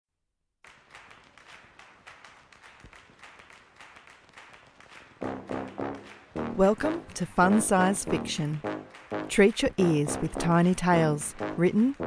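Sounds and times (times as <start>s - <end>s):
pitched melody notes: 5.2s - 12.0s
soft ticking percussion: 5.2s - 12.0s.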